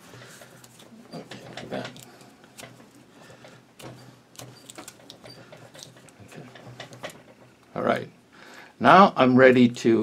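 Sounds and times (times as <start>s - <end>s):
nylon cord rustling and rubbing: 0.0s - 7.6s.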